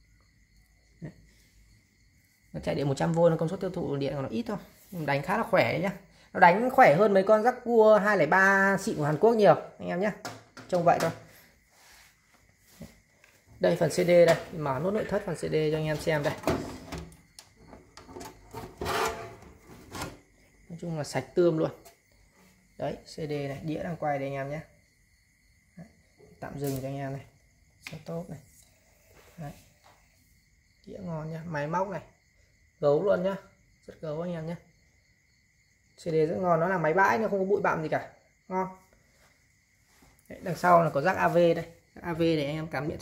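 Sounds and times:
sheet-metal cover scraping chassis: 17.7 - 20.2.

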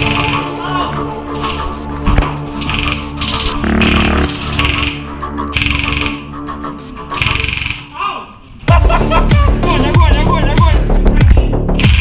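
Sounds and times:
background music: 0.0 - 12.0
airsoft rifle rapid fire: 2.6 - 6.2, 7.1 - 7.9
electronic beat with kicks: 8.7 - 12.0.

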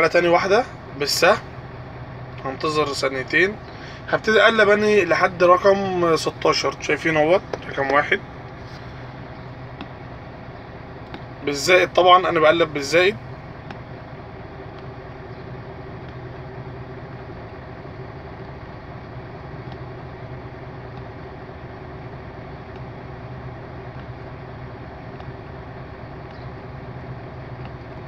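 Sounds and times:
truck diesel engine idling: 0.0 - 28.0.

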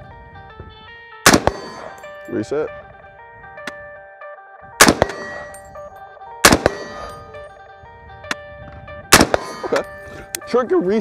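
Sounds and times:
background music: 0.0 - 11.0
rifle shots: 1.2 - 2.0, 4.8 - 5.7, 6.4 - 7.4, 9.1 - 9.8.

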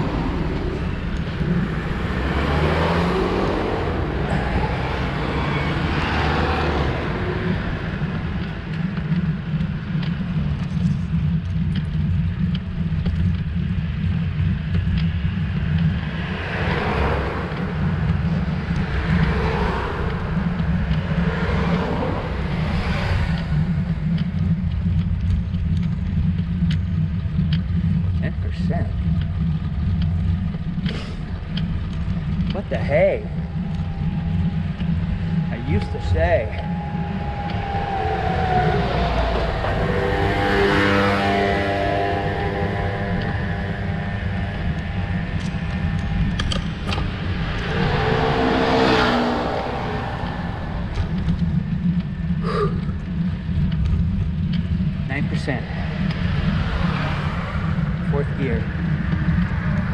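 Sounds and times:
traffic passing: 0.0 - 59.9
wind rumble on microphone: 0.0 - 59.9.

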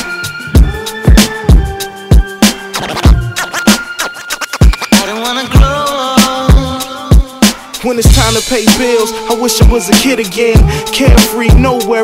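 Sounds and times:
hip hop beat with kick drum: 0.0 - 12.0
turntable scratching: 2.4 - 6.8.

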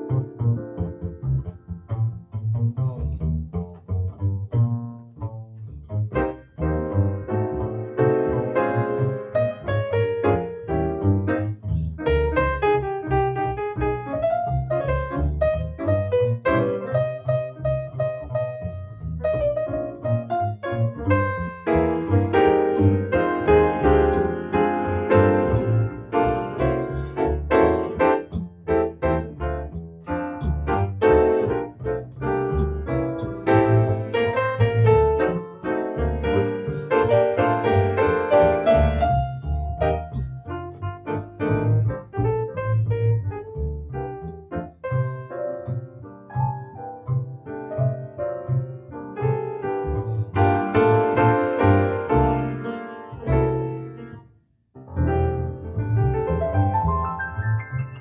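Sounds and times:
grand piano: 0.0 - 58.0
plucked double bass: 0.0 - 58.0.

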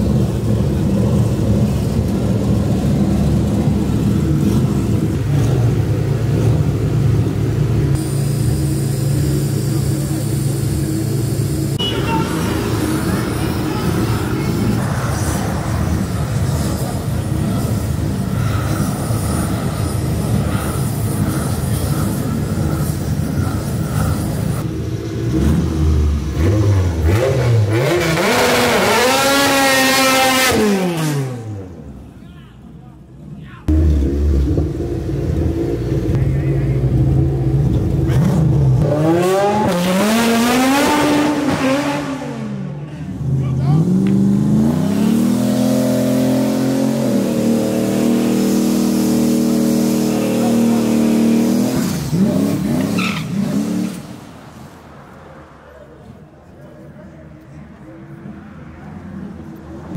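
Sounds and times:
car engines revving: 0.0 - 32.2, 33.0 - 59.9
engine held at high revs: 18.7 - 31.7, 33.7 - 42.6, 43.6 - 54.1.

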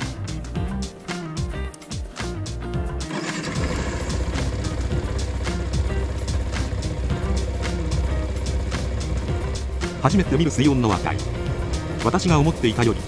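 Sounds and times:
background music: 0.0 - 13.0
motorcycle engine starting and idling: 2.8 - 13.0.

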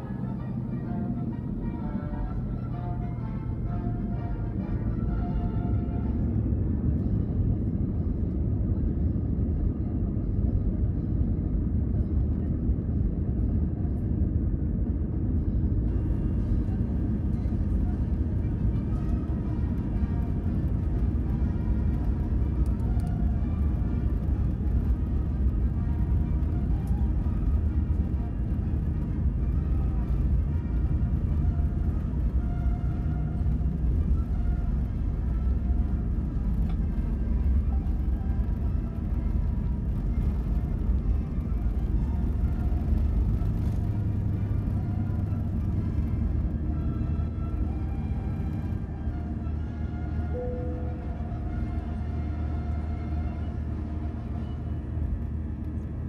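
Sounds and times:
aircraft cabin rumble: 0.0 - 56.0.

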